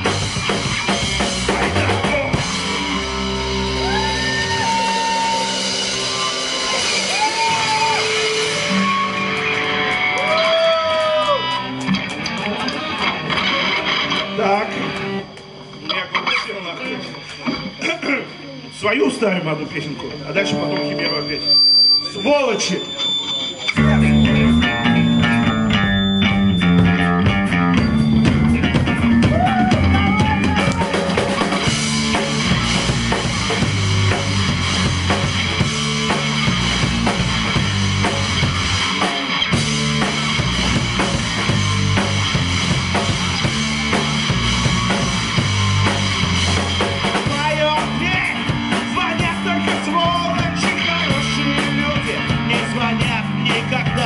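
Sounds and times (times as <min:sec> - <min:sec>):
loud rock band playing: 0:00.0 - 0:54.0.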